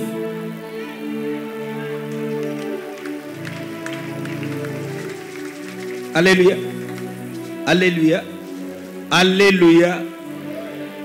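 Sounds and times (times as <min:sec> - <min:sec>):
soft sustained chords: 0:00.0 - 0:11.0.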